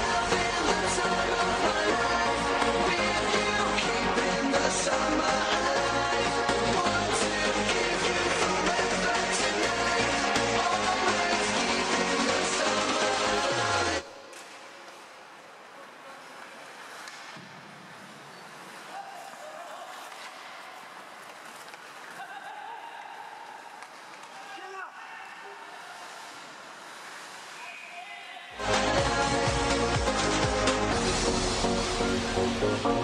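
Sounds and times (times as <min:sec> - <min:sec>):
electronic dance music: 0:00.0 - 0:14.1, 0:28.6 - 0:33.0.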